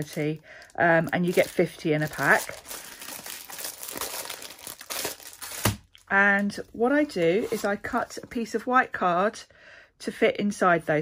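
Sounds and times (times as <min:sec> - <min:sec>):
plastic packaging crinkling: 0:00.0 - 0:07.8.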